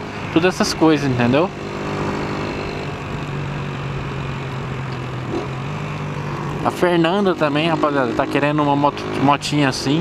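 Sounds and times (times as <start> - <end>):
motorcycle engine cruising: 0.0 - 10.0
wind and road noise: 0.0 - 10.0.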